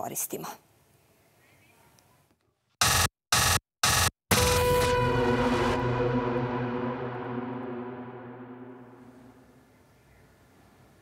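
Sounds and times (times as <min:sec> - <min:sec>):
loud alert blasts: 0:02.8 - 0:09.7
long ringing alert tone: 0:02.9 - 0:09.5.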